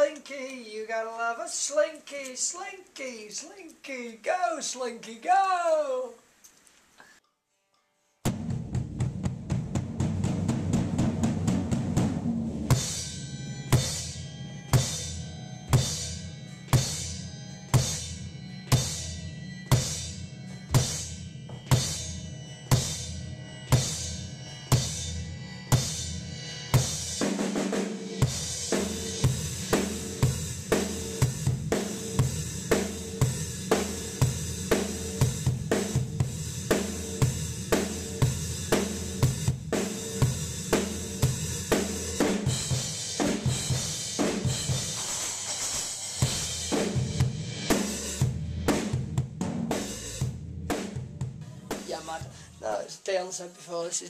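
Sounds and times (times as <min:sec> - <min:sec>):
drum kit: 0:08.2 - 0:52.8
cymbals: 0:12.7 - 0:49.0
electric bass: 0:46.2 - 0:51.8.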